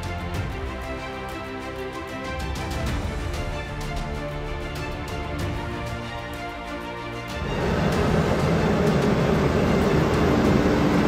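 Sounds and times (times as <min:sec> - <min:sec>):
tractor engine and planter noise: 0:07.3 - 0:11.0
steady hum: 0:07.4 - 0:11.0.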